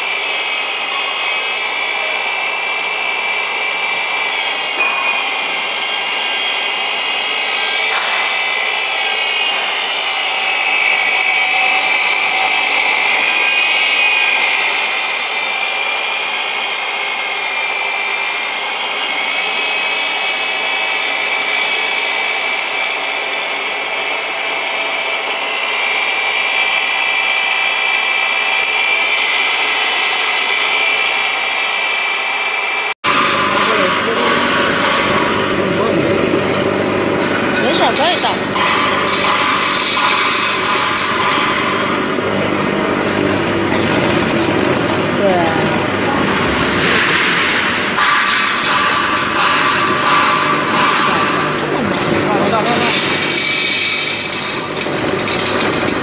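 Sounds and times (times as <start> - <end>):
grinding mill motor whine: 0.0 - 56.0.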